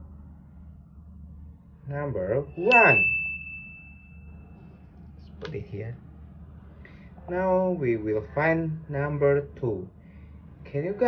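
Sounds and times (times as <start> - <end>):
high pure ding: 2.5 - 4.3.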